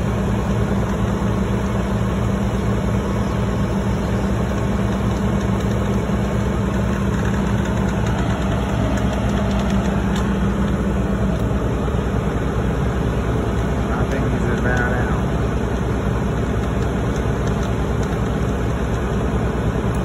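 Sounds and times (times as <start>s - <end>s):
heavy diesel engine idling: 0.0s - 20.0s.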